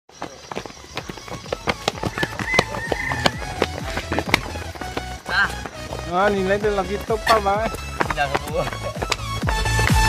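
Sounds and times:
running footsteps: 0.1s - 10.0s.

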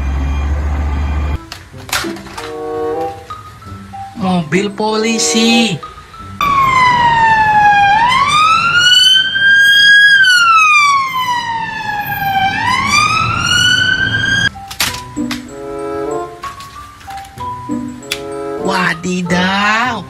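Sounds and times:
police car siren wailing: 5.0s - 14.6s.

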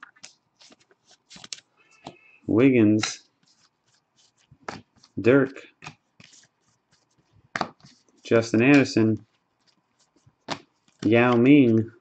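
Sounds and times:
cards rustling: 0.0s - 2.3s, 2.9s - 11.9s
cards snapping: 0.1s - 1.6s.

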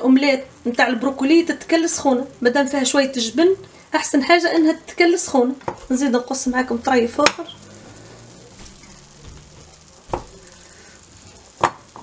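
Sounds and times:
faint sizzle from pan: 0.0s - 12.0s.

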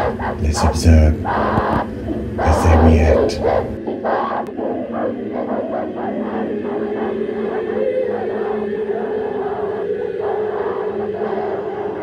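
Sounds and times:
choir singing: 0.0s - 12.0s.

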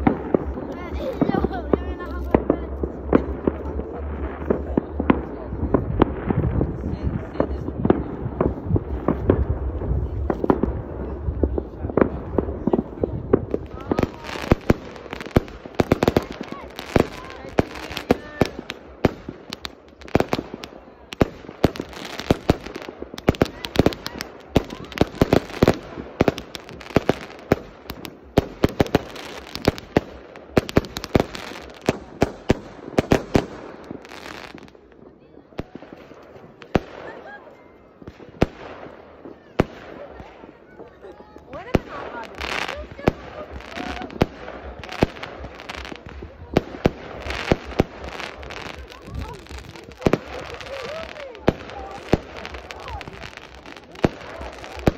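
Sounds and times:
fireworks bangs and crackles: 0.0s - 54.9s.

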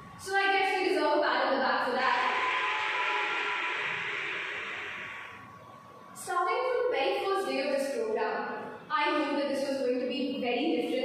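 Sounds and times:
hiss with faint whistle: 2.0s - 5.7s.

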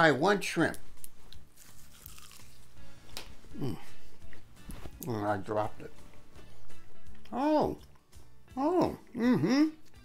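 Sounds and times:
crunching fried shrimp: 1.0s - 3.3s.

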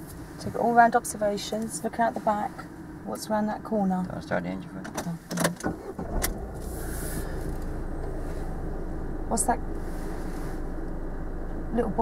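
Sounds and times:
car engine starting and idling: 0.0s - 12.0s
car engine click: 1.5s - 1.8s, 4.8s - 6.7s, 7.4s - 8.2s.

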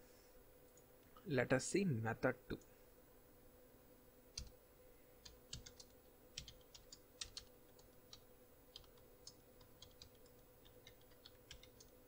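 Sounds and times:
faint steady hum: 0.0s - 12.0s
typing on computer keyboard: 5.2s - 12.0s.

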